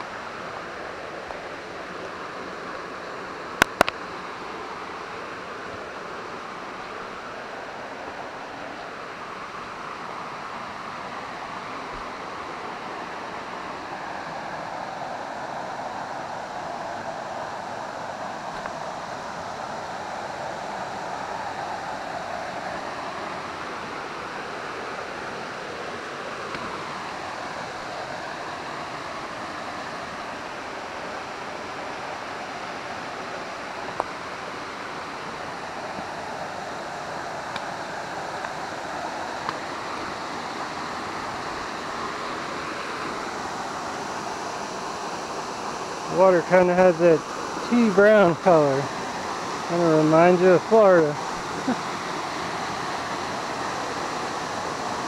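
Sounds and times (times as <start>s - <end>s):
creek water flowing: 0.0s - 55.0s.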